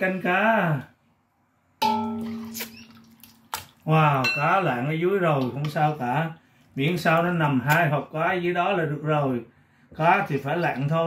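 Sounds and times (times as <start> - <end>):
metal ladle striking a pot: 1.8 - 3.2, 4.2 - 4.7.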